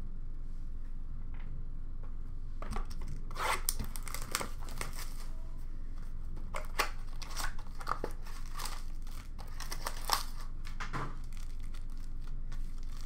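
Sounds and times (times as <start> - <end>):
plastic wrappers crinkling and tearing: 2.9 - 5.4, 6.5 - 13.0.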